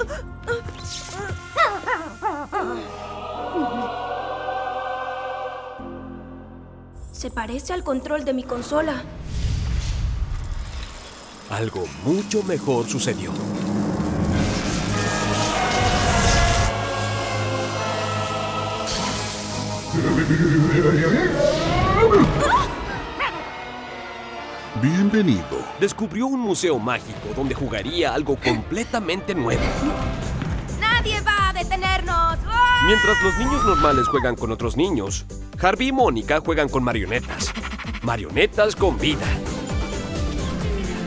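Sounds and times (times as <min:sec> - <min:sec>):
background music: 0:00.0 - 0:09.4, 0:11.1 - 0:41.0
choir holding a sustained chord: 0:02.5 - 0:06.9, 0:14.4 - 0:21.1.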